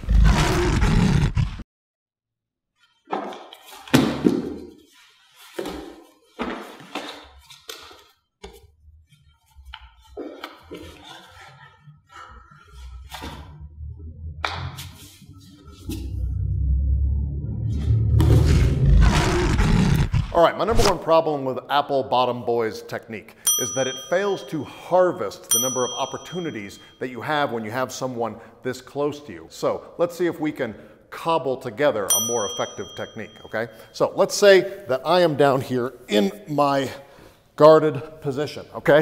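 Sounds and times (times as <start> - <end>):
bass-heavy background music: 11.8 - 20.4.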